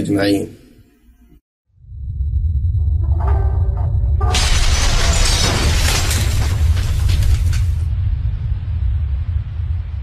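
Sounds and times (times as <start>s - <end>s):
deep low rumble: 1.8s - 10.0s
loud shattering crash: 4.2s - 7.9s.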